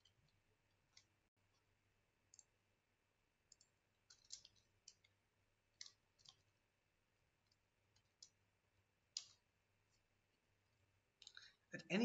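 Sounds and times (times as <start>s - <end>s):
faint keyboard keystrokes: 3.5s - 5.2s, 5.8s - 6.5s.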